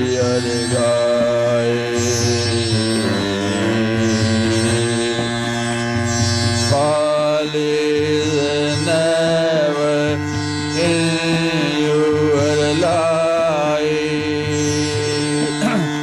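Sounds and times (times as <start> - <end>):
devotional song melody: 0.0 - 16.0
steady drone: 0.0 - 16.0.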